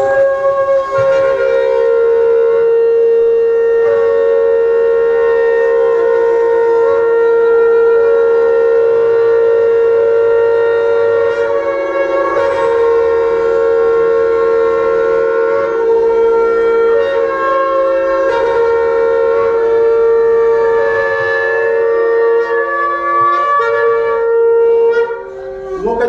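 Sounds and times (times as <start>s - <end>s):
sustained wind instrument tones: 0.0s - 26.0s.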